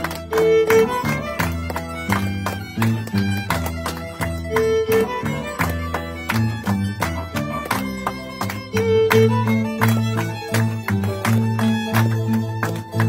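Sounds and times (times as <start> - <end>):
hands clapping: 0.0 - 13.0
violin melody: 0.0 - 13.0.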